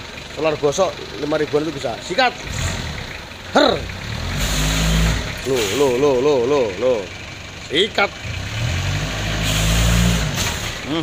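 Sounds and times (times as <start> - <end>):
diesel engine revving: 0.0 - 11.0.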